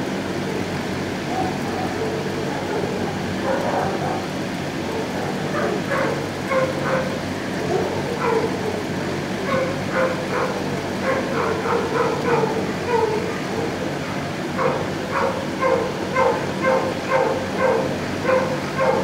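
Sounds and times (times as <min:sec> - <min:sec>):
dogs barking: 0:00.4 - 0:19.0.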